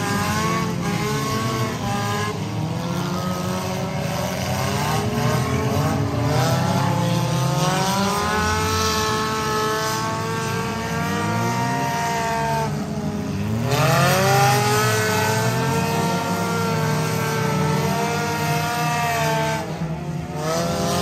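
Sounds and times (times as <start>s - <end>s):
race car engines accelerating: 0.0s - 21.0s.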